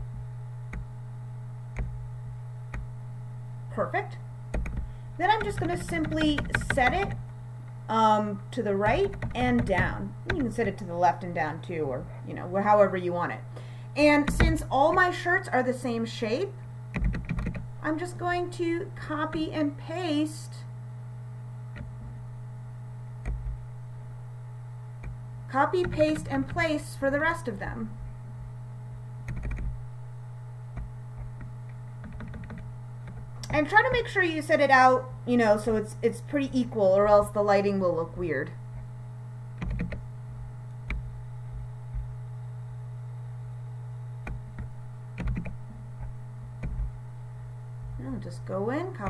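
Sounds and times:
electrical hum: 0.0 - 49.0
computer keyboard keys tapping: 4.5 - 7.2, 8.9 - 10.7, 14.2 - 15.1, 17.0 - 17.6, 25.8 - 26.6, 29.3 - 29.7, 30.8 - 33.6, 39.6 - 40.0, 44.2 - 46.9
computer mouse clicks: 5.4 - 7.2, 30.8 - 33.6.

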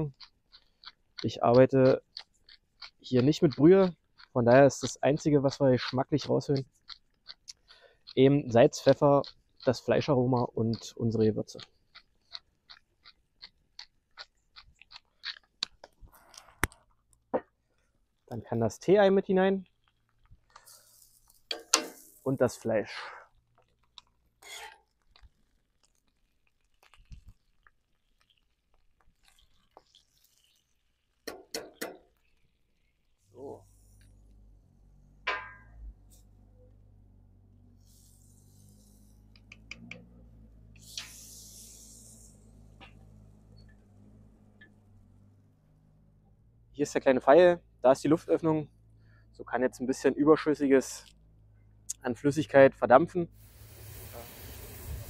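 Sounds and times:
pepper mill grinding: 0.1 - 16.5, 23.6 - 32.7
metal pot clinking: 21.4 - 22.3, 35.3 - 35.8
brief hiss: 37.8 - 39.3, 40.8 - 43.2, 53.4 - 55.0.

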